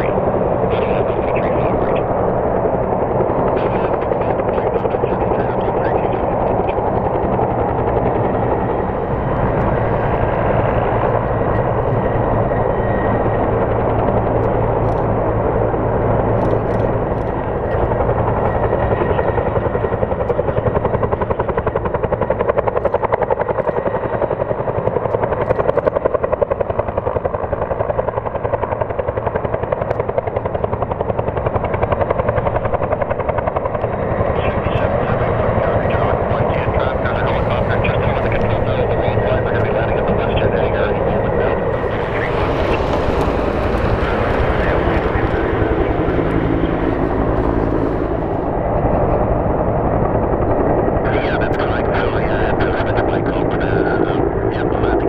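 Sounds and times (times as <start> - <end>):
helicopter flying past: 0.0 - 55.0.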